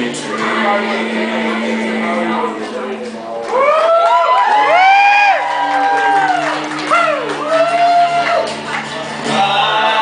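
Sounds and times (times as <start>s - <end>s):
men singing wordless harmony: 0.0s - 3.1s, 9.2s - 10.0s.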